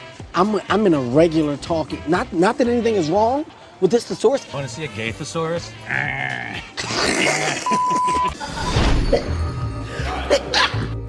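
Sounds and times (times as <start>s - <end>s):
mix of voices: 0.0s - 6.9s.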